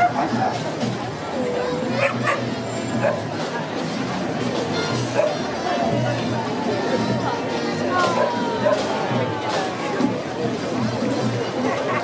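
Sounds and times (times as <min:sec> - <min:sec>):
crowd chatter: 0:00.0 - 0:12.0
music: 0:00.0 - 0:12.0
dog barking: 0:02.0 - 0:03.3, 0:05.1 - 0:05.4.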